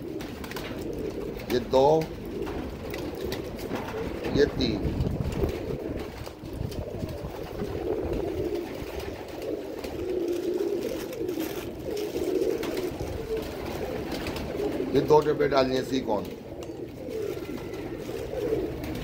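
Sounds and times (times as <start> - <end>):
pigeons cooing: 0.0 - 19.0
plastic bag rustling: 3.1 - 15.1, 15.8 - 19.0.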